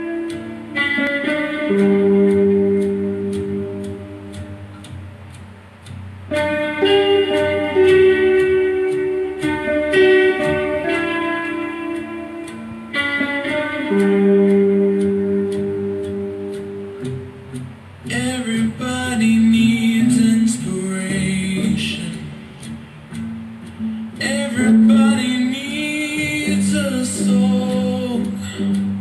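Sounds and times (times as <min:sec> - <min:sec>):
electric guitar ringing: 0:00.0 - 0:29.0
steady ticking: 0:00.0 - 0:29.0.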